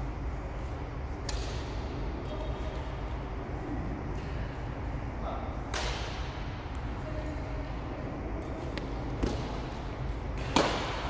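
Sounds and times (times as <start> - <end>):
racket hitting shuttlecock: 1.2 - 1.8, 5.7 - 6.4, 8.6 - 9.7, 10.3 - 11.0.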